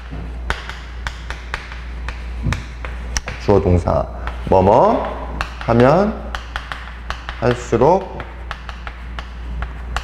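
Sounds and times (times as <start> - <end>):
chalk tapping on chalkboard: 0.0 - 10.0.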